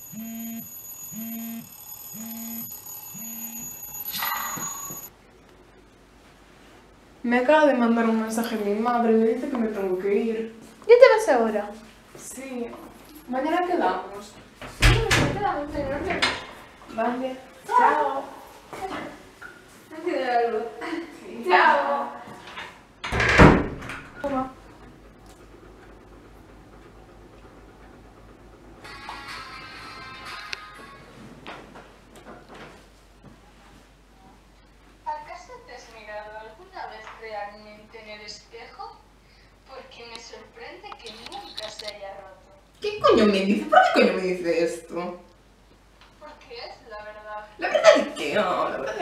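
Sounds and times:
phone vibration buzz: 0:00.0 - 0:05.1
short loud phone alert: 0:00.0 - 0:05.1
wooden door shutting with thud: 0:23.1 - 0:24.1.

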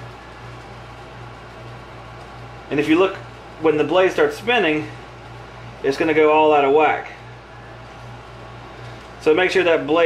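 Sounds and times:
room background hum: 0:00.0 - 0:10.0.

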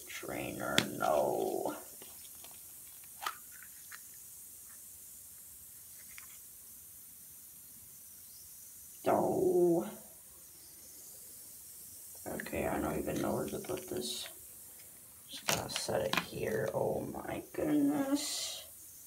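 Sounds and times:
plastic capsule clicking open: 0:03.0 - 0:04.1.

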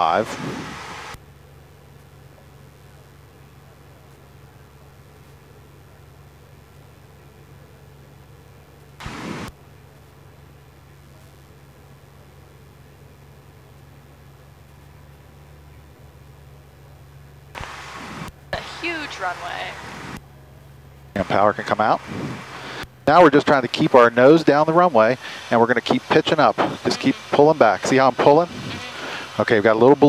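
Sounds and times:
aircraft engine and propeller drone: 0:00.0 - 0:30.0.

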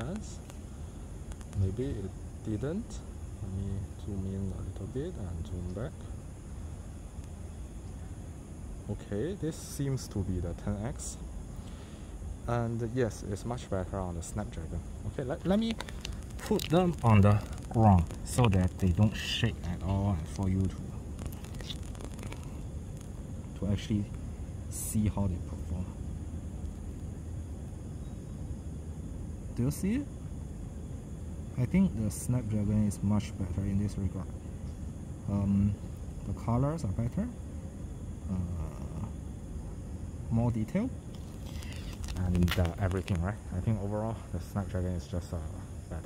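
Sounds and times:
even hiss: 0:00.0 - 0:46.0
low outdoor background rumble: 0:00.0 - 0:46.0.

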